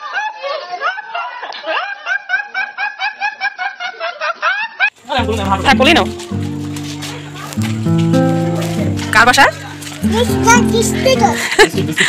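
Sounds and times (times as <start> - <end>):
man laughing in snickers: 11.4 - 12.0.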